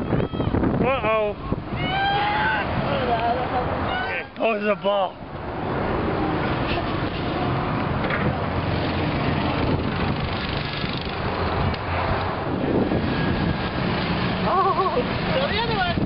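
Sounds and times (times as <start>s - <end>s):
outdoor noise: 0.0s - 16.0s
vehicle engine rumbling: 0.0s - 16.0s.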